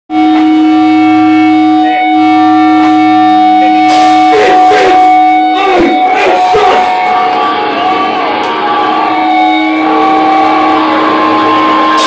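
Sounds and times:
electric guitar feedback: 0.1 - 12.0.

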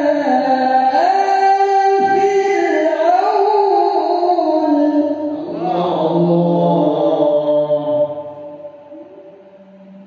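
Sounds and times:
man reciting melodically into microphone: 0.0 - 10.0.

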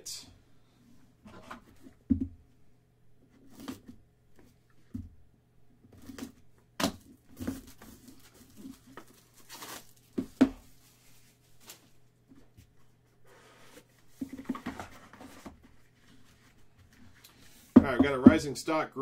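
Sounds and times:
cardboard box scrapes and rustles: 13.2 - 17.1.

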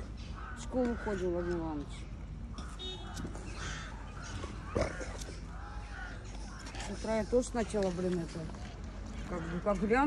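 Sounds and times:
crow cawing: 0.3 - 1.7, 2.5 - 7.1, 9.3 - 10.0.

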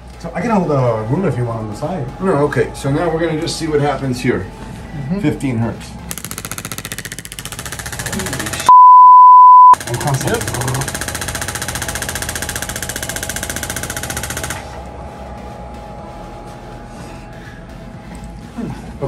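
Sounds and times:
loud steady beep: 8.7 - 9.8.

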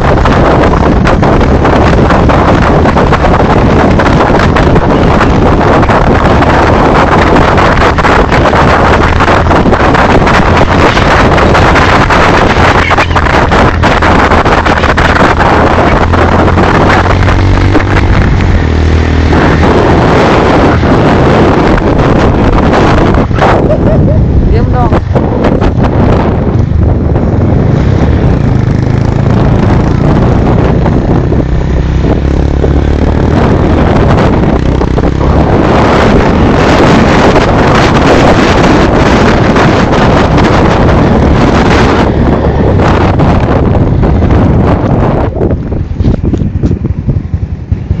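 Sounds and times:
motorcycle engine running: 0.0 - 48.0
wind buffeting microphone: 0.0 - 48.0.

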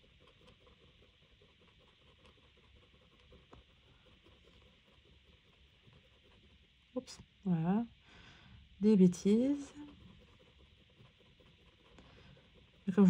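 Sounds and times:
marker tapping and scratching paper: 0.0 - 6.7.

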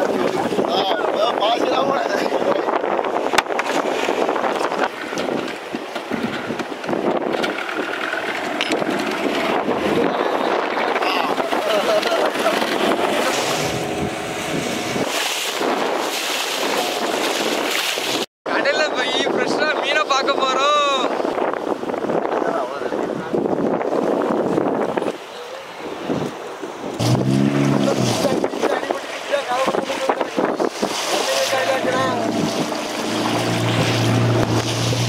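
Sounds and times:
wind buffeting microphone: 0.0 - 35.0
outboard motor running: 3.0 - 18.3, 27.0 - 35.0
voices: 27.6 - 35.0.

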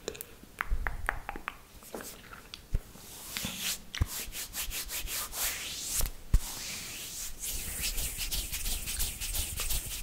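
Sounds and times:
palms rubbing together: 3.1 - 10.0.

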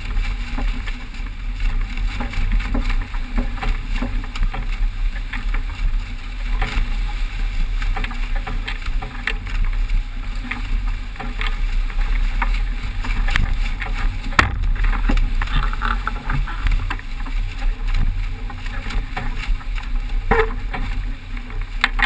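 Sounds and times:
wind buffeting microphone: 0.0 - 21.8
water rushing along hull: 0.0 - 22.0
sharp clicks and knocks: 12.3 - 22.0.

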